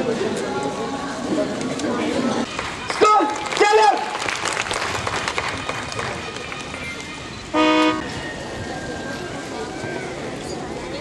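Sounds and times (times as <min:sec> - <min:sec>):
outdoor crowd noise: 0:00.0 - 0:11.0
short horn blast: 0:07.5 - 0:08.1.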